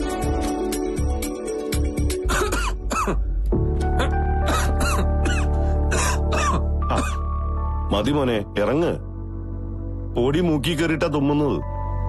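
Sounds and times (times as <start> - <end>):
background music with low drone: 0.0 - 12.0
man coughing: 2.2 - 3.3, 4.0 - 7.2
man clearing throat: 2.3 - 3.3, 4.0 - 7.2.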